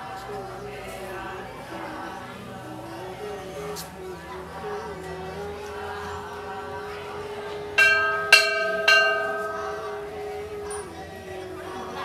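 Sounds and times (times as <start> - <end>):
steady held tone: 5.3 - 12.0
temple bell ringing: 6.7 - 11.5.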